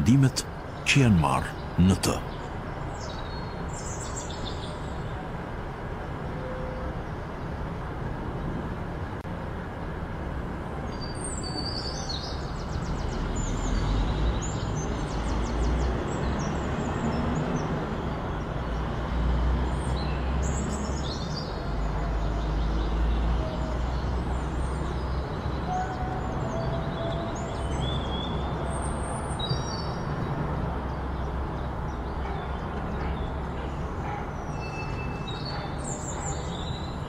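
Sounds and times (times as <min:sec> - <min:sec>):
birds chirping: 0:00.0 - 0:04.8.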